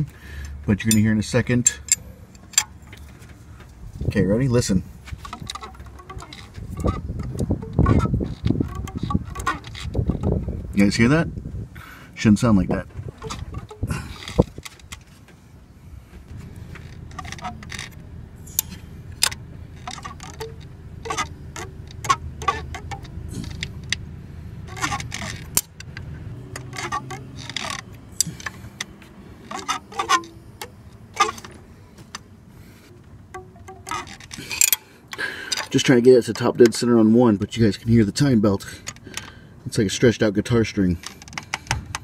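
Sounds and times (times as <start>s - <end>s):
timing belt clicks and twangs: 5.2s - 10.4s, 16.4s - 31.6s, 33.2s - 36.8s.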